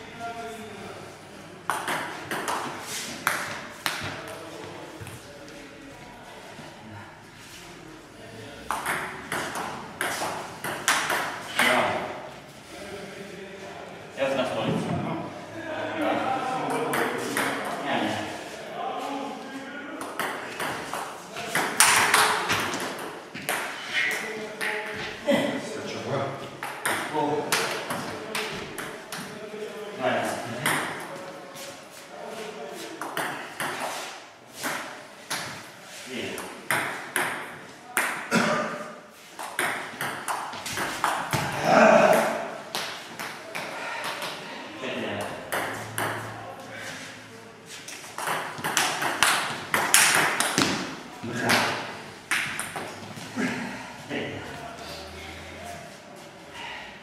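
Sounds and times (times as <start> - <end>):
people talking in a hall: 0.0 - 57.0.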